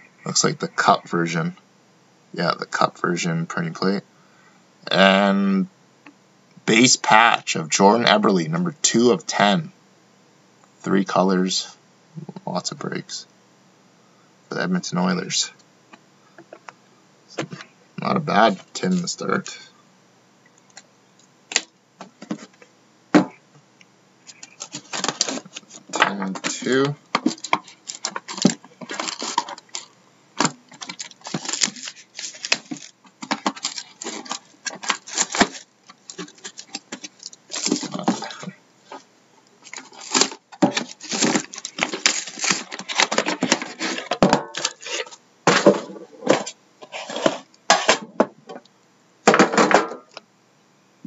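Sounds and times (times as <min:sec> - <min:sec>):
plastic wrap crinkling and tearing: 0:24.2 - 0:38.5, 0:39.6 - 0:45.1.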